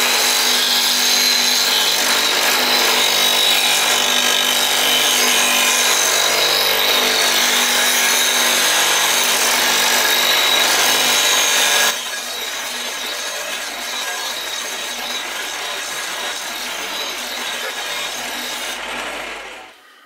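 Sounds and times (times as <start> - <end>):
bench grinder grinding steel: 0.0 - 20.0.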